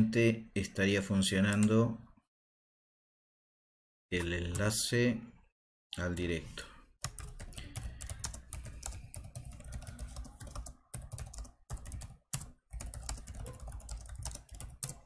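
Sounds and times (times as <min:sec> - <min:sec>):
computer keyboard typing: 0:07.0 - 0:15.0.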